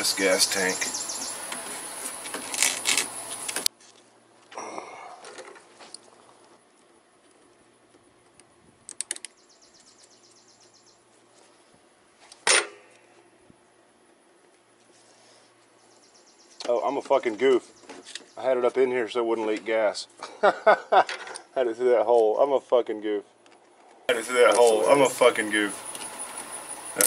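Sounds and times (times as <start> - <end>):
insect buzz: 0.0 - 3.6.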